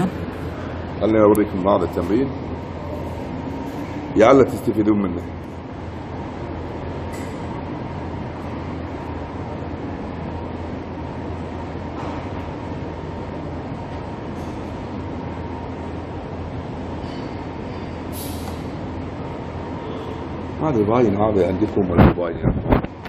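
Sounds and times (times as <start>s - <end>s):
low room hum and rumble: 0.0s - 23.0s.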